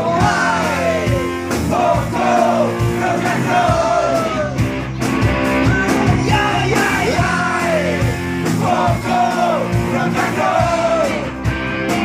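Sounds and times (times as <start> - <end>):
live rock band playing: 0.0 - 12.0
men singing and shouting together: 0.0 - 12.0.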